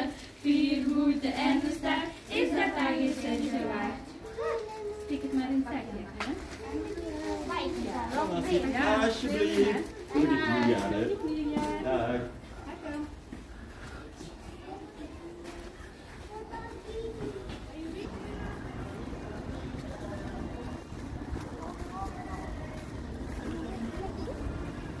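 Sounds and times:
steady low rumble: 17.9s - 25.0s.

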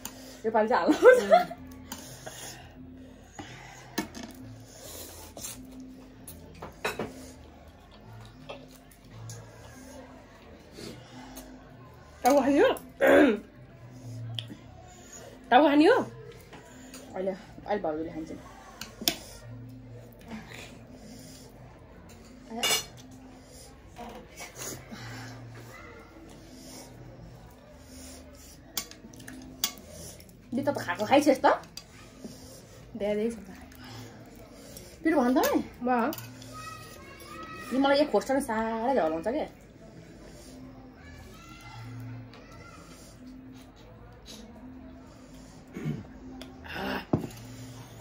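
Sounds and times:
quiet eating sounds: 0.0s - 48.0s
metal chopsticks clicking on plates: 28.8s - 30.3s.

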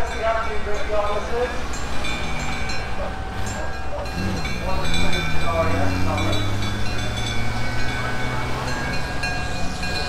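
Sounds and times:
fire engines driving past: 0.0s - 10.0s
tank engine running: 0.6s - 10.0s.

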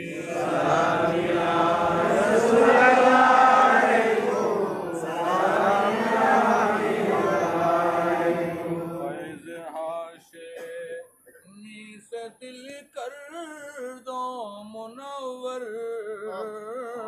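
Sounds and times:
men chanting together: 0.0s - 9.5s
man singing alone: 9.0s - 17.0s.

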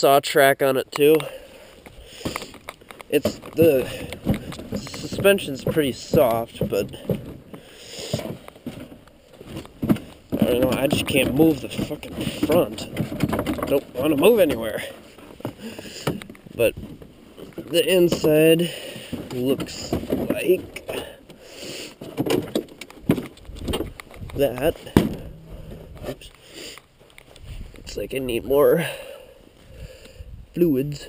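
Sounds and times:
low rustling: 1.5s - 28.6s
plastic hood rattling and clacking: 2.3s - 21.4s, 22.0s - 26.2s.

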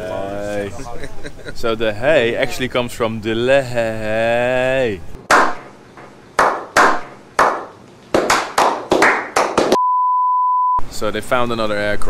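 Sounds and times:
slow hand clapping: 5.3s - 9.8s
high test-tone beep: 9.8s - 10.8s.

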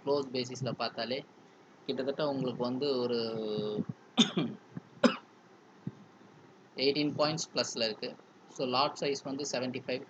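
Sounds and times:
man coughing: 4.2s - 5.2s.

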